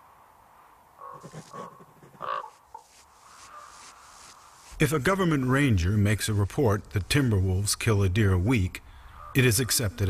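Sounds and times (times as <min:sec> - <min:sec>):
short pitched animal calls: 0:01.0 - 0:04.6.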